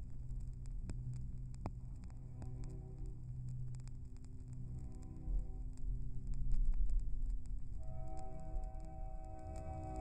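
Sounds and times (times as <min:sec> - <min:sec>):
record player hum: 0:00.0 - 0:10.0
record surface noise clicks: 0:00.0 - 0:10.0.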